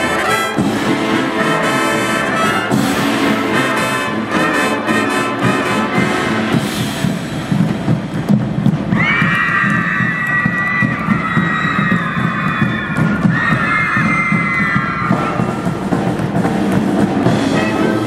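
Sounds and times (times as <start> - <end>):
marching band drums: 0.0 - 18.0.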